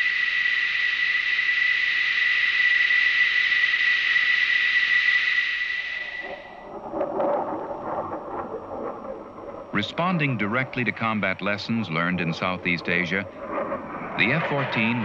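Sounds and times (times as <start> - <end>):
jet engine whine: 5.0 - 15.0
low rough jet noise: 5.5 - 15.0.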